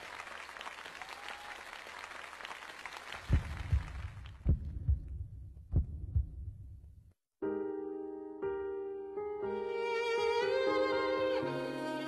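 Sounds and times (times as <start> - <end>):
applause: 0.0 - 4.5
deep double thumps: 3.3 - 7.1.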